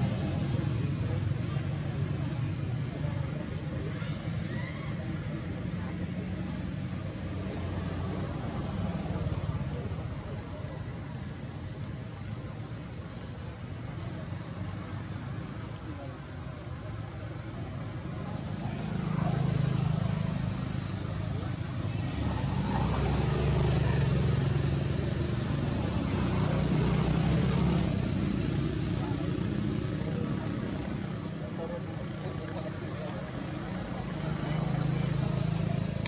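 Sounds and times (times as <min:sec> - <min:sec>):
rumble of passing vehicles: 0:00.0 - 0:36.0.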